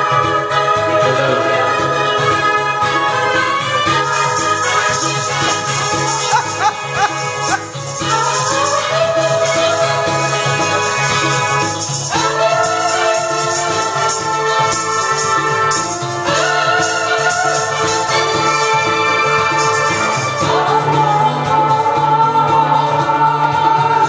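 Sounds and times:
hand percussion shaking: 0:00.0 - 0:24.0.

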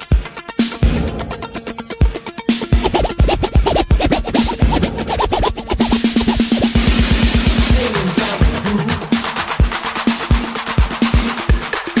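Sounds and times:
turntable scratching: 0:02.7 - 0:07.8
electro hip-hop beat: 0:02.7 - 0:09.1.

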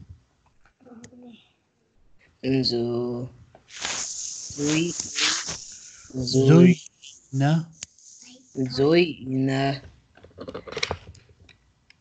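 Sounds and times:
person reciting aloud slowly: 0:04.2 - 0:09.4.

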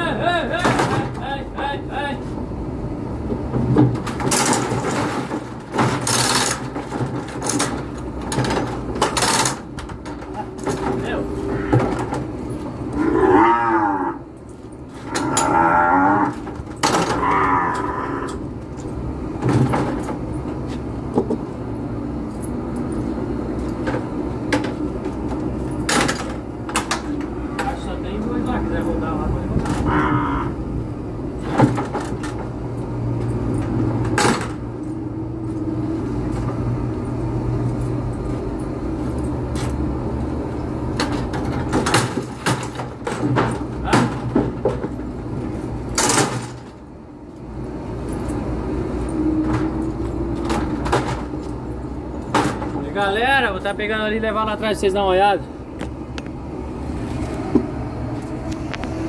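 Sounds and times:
metal gates knocking and clanking: 0:00.5 - 0:01.8, 0:03.4 - 0:20.6, 0:22.3 - 0:30.6, 0:31.4 - 0:35.2, 0:40.8 - 0:46.9, 0:48.0 - 0:54.5
calves mooing: 0:11.4 - 0:11.9, 0:12.9 - 0:14.3, 0:15.0 - 0:18.5, 0:29.8 - 0:30.7.

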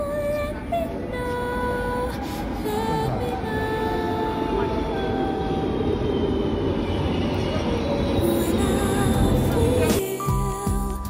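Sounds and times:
metro train rumbling and whining: 0:00.0 - 0:10.3.

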